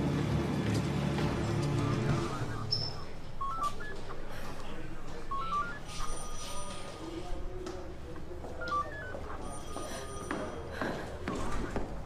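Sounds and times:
faint room murmur: 1.3 - 12.0
electronic telephone ringing: 2.1 - 4.3, 5.1 - 7.1, 8.5 - 10.5.

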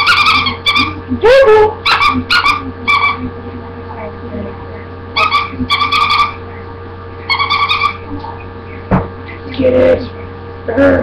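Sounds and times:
dog whining: 0.0 - 3.3, 5.2 - 6.4, 7.3 - 8.0
steady electrical hum: 0.0 - 11.0.

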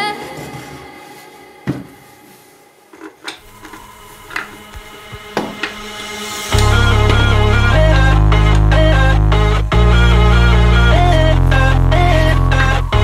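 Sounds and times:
music: 3.4 - 13.0
loud electronic music with deep bass: 3.5 - 13.0.

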